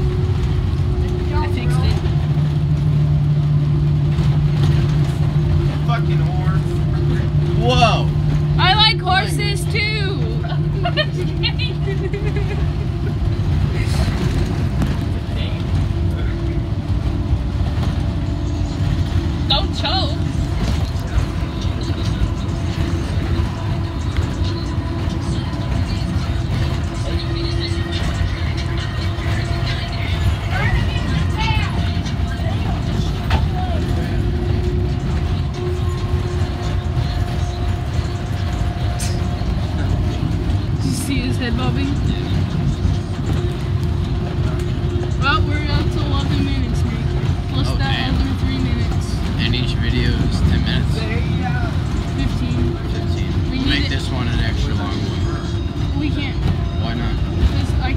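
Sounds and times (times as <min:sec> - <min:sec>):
bus engine rumble and road noise: 0:00.0 - 0:57.9
passengers' voices: 0:00.0 - 0:57.9.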